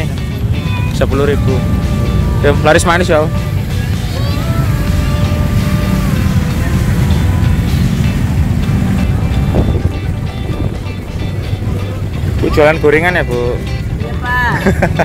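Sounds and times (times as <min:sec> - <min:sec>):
motorbike traffic rumble: 0:00.0 - 0:15.0
music playing: 0:00.0 - 0:15.0
wind on microphone: 0:03.4 - 0:12.5.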